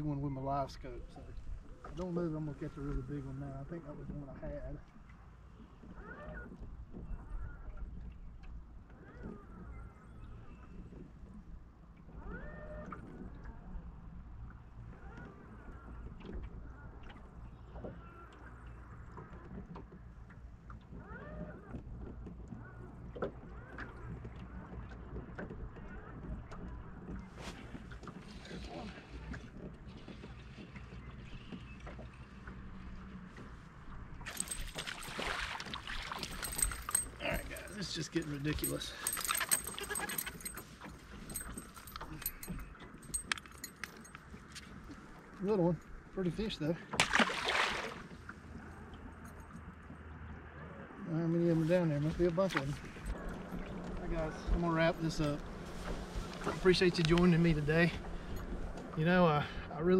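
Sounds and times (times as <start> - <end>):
small waves lapping against boat hull: 0.1 - 59.0
fish splashing out of water: 34.3 - 37.0, 46.9 - 48.2.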